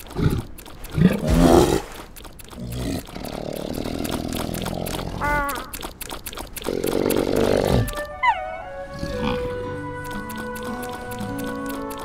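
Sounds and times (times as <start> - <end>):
cartoon bear growling: 0.0 - 5.8, 6.6 - 9.8
falling cry: 7.7 - 9.6.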